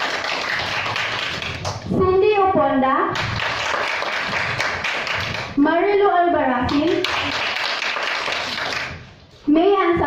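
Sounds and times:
crowd applauding: 0:00.0 - 0:01.8, 0:03.4 - 0:05.6, 0:07.0 - 0:08.9.

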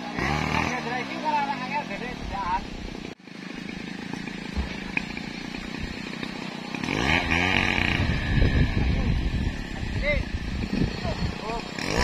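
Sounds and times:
steady engine hum: 0:00.0 - 0:12.0.

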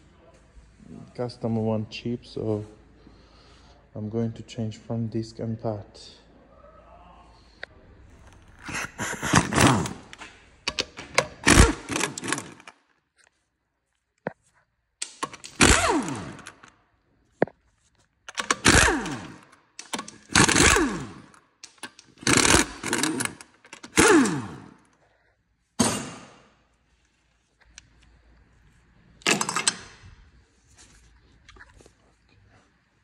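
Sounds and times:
impact wrench bursts: 0:08.2 - 0:12.8, 0:15.0 - 0:16.7, 0:18.3 - 0:24.9.

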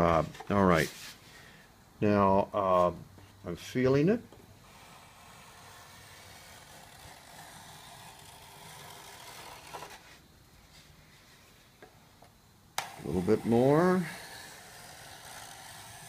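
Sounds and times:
hand plane shaving wood: 0:04.7 - 0:10.0, 0:12.8 - 0:16.0.

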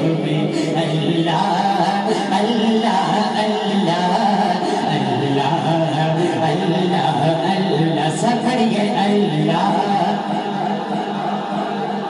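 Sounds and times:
man chanting unaccompanied: 0:00.0 - 0:11.4.

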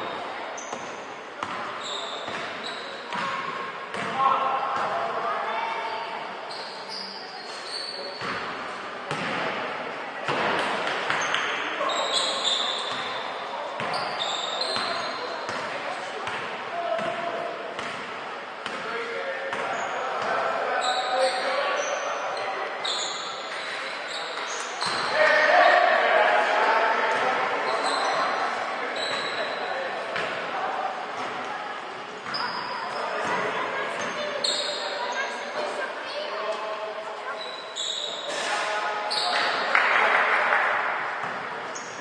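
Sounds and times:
sneakers squeaking: 0:00.0 - 0:09.6, 0:10.2 - 0:26.0, 0:27.1 - 0:36.4, 0:37.3 - 0:39.9, 0:41.1 - 0:42.0
basketball bouncing on court: 0:00.7 - 0:04.2, 0:09.1 - 0:09.4, 0:13.8 - 0:14.1, 0:14.7 - 0:17.2, 0:17.8 - 0:18.8
echoing players' voices: 0:23.4 - 0:37.5.

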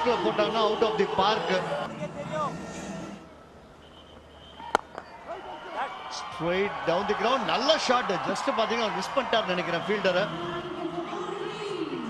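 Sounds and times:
stadium background noise: 0:00.0 - 0:12.0
cricket bat striking ball: 0:04.6 - 0:05.1.

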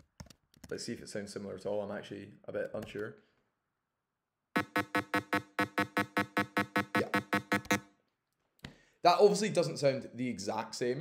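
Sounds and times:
fast square wave beeps: 0:04.6 - 0:07.8.

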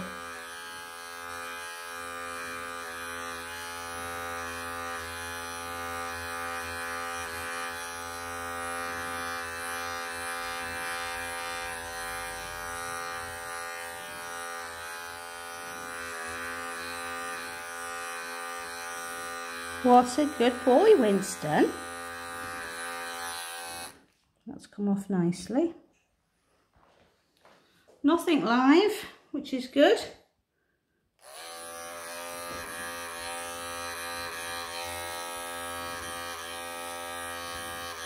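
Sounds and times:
pet clipper running: 0:00.0 - 0:24.1, 0:31.2 - 0:38.0.

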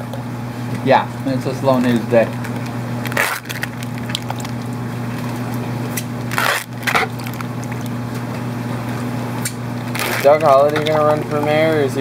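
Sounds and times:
water splashing and sloshing: 0:01.8 - 0:12.0.

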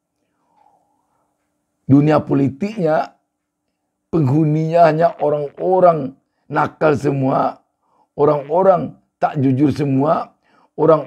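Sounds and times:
man speaking: 0:01.9 - 0:03.2, 0:04.2 - 0:07.6, 0:08.2 - 0:11.0.

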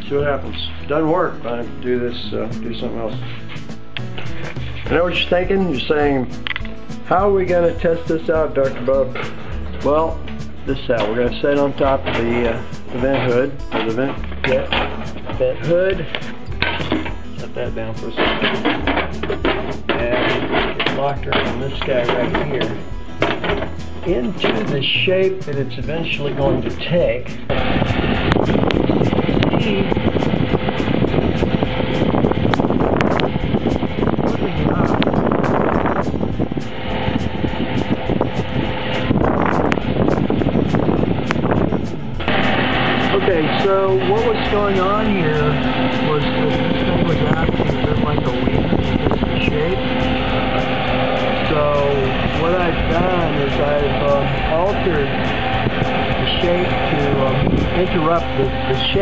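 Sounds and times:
range hood fan rushing air: 0:06.8 - 0:59.0
steady hum: 0:27.0 - 0:59.0.

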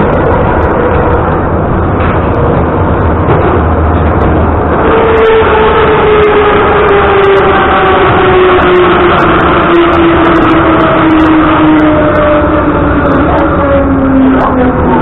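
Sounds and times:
train wheel rumble: 0:00.0 - 0:15.0.

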